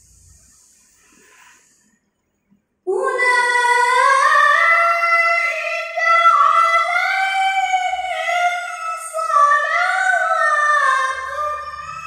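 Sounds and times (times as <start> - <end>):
boy chanting recitation: 2.9 - 12.0.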